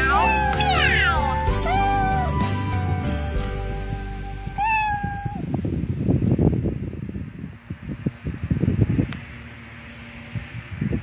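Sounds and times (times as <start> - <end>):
cat meowing: 0.0 - 2.5, 4.6 - 5.4.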